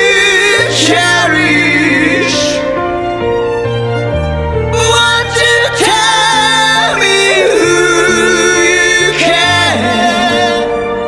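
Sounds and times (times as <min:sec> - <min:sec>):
man singing a ballad: 0:00.0 - 0:02.7, 0:04.7 - 0:10.8.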